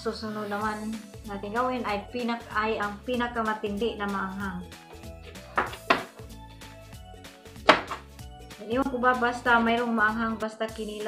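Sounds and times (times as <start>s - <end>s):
background music: 0.0s - 11.0s
knife striking cutting board: 5.6s - 6.2s, 7.6s - 8.0s.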